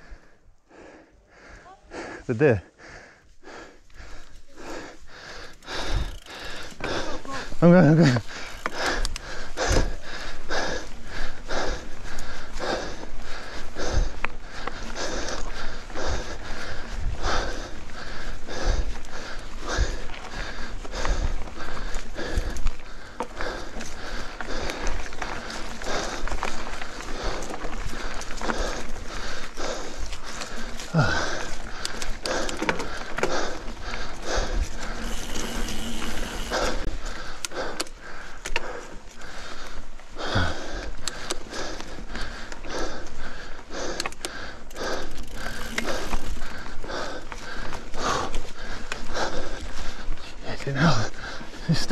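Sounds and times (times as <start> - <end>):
bike trail noise: 0.0 - 51.9
heavy rhythmic breathing: 0.0 - 51.9.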